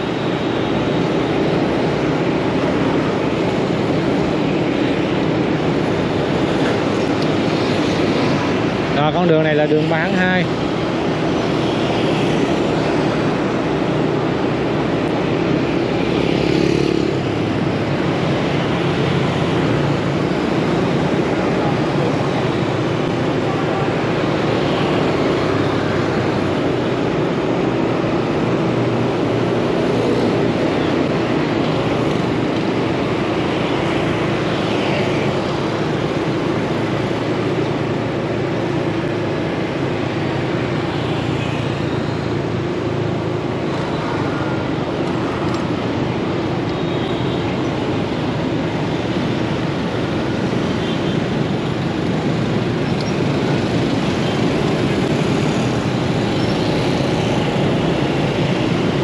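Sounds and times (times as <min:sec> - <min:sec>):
scooter and car engines: 0:00.0 - 0:59.0.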